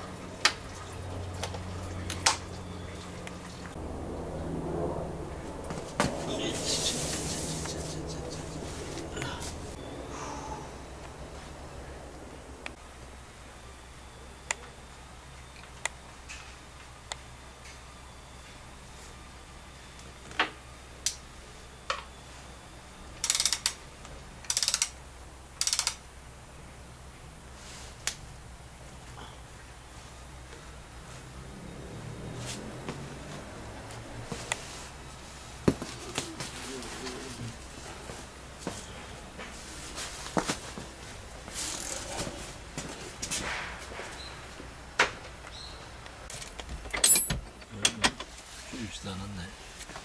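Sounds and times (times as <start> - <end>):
steady low hum: 0.0 - 50.0
faint muffled sounds: 6.0 - 12.8, 35.7 - 44.2
ratchet wrench clicking: 23.2 - 23.8, 24.5 - 25.0, 25.6 - 26.0.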